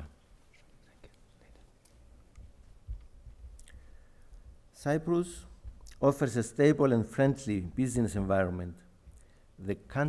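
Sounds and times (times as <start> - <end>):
man speaking: 4.7 - 8.9, 9.6 - 10.0.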